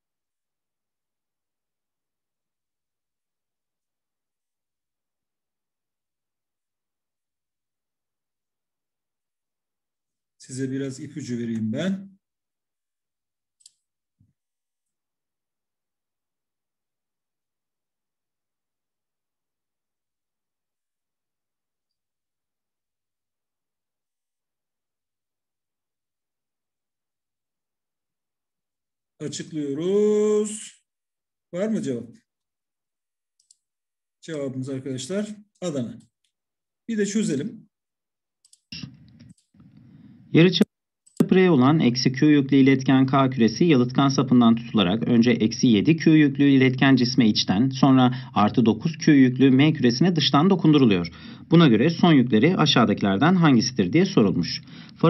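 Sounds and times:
computer mouse clicks: 0:13.6 - 0:13.9, 0:33.4 - 0:33.7, 0:38.4 - 0:39.9, 0:41.0 - 0:41.3.

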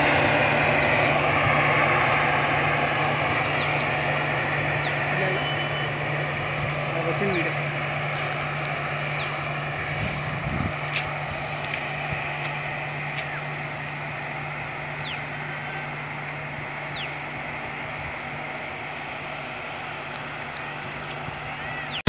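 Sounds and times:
passenger train running past: 0:00.0 - 0:22.0.

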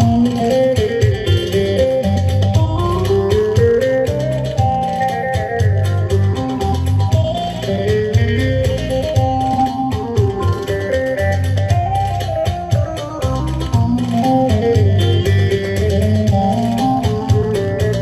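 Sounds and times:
folk dance music: 0:00.0 - 0:18.0.

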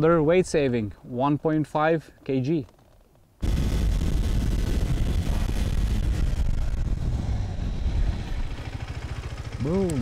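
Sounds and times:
motorcycle engine rumbling: 0:03.5 - 0:10.0.

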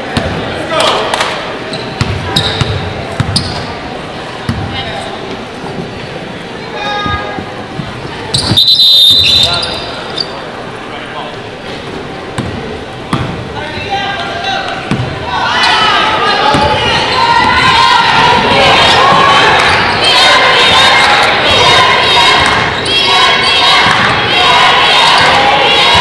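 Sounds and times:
shoe squeal: 0:01.7 - 0:02.8, 0:03.4 - 0:03.7, 0:08.3 - 0:10.4
crowd shouting: 0:14.1 - 0:26.0.

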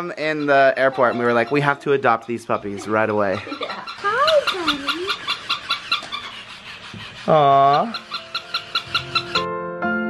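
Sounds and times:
walking toy ticking: 0:03.6 - 0:09.4
soft piano music: 0:07.6 - 0:10.0.

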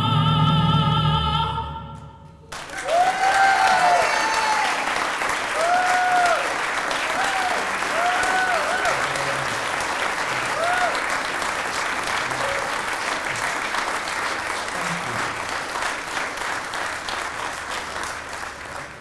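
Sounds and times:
audience applauding: 0:02.5 - 0:19.0
voices cheering: 0:02.6 - 0:13.2.

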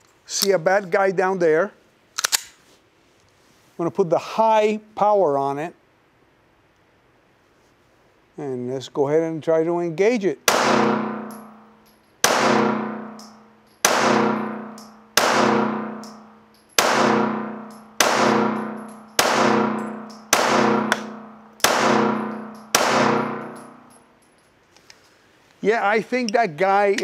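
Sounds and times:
pistol shots: 0:10.5 - 0:11.4, 0:12.2 - 0:23.8.

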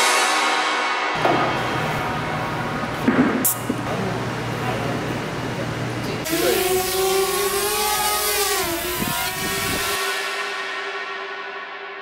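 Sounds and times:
drone propellers whining: 0:06.0 - 0:10.5.

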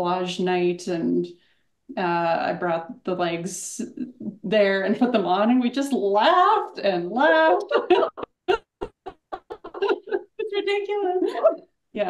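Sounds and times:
women laughing: 0:07.5 - 0:11.6.

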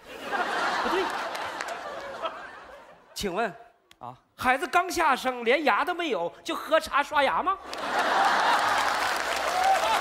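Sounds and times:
audience applauding: 0:00.5 - 0:02.3, 0:07.6 - 0:10.0.

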